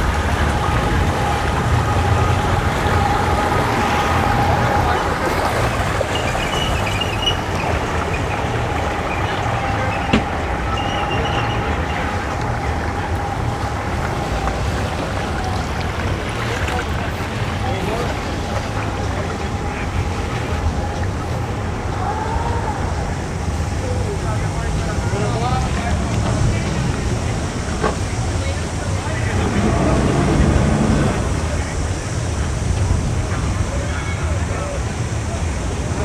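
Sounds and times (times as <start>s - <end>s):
outboard motors idling: 0.0s - 36.0s
people talking: 0.0s - 36.0s.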